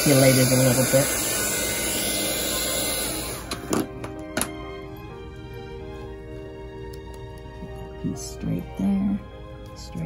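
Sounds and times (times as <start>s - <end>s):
heat gun blowing air: 0.0s - 3.7s.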